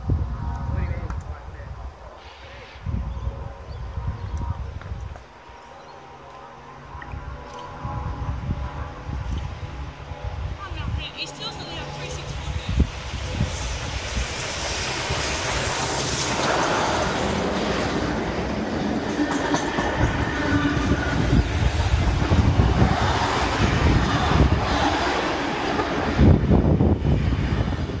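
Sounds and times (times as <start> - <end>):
train rail rumble: 0.0 - 28.0
wheels clattering over rail joints: 13.9 - 21.6.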